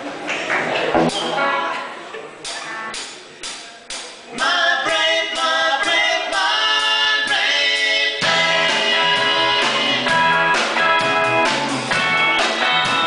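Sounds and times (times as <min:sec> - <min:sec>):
live rock band playing: 0:00.9 - 0:03.2, 0:08.2 - 0:13.0
sharp drum beats: 0:01.0 - 0:01.6, 0:08.2 - 0:13.0
voices singing in harmony: 0:04.4 - 0:10.8.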